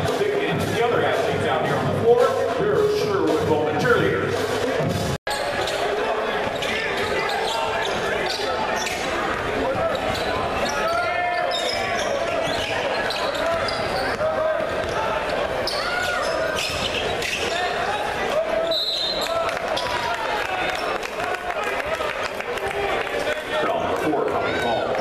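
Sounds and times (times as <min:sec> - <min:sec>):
crowd chatter and calls: 0:00.0 - 0:25.0
shoes squeaking on court: 0:05.3 - 0:19.2
referee's whistle: 0:18.6 - 0:19.3.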